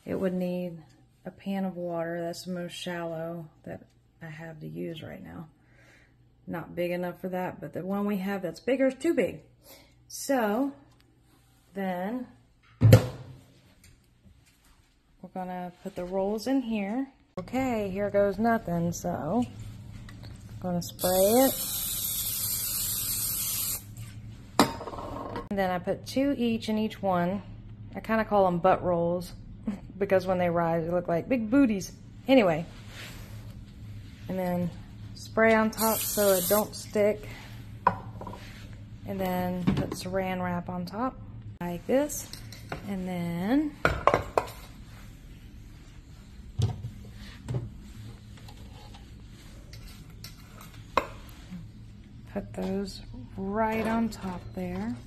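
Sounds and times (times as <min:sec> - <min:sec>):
low steady hum: 0:00.0 - 0:55.0
aerosol spray can hissing: 0:21.0 - 0:23.9, 0:35.8 - 0:36.8.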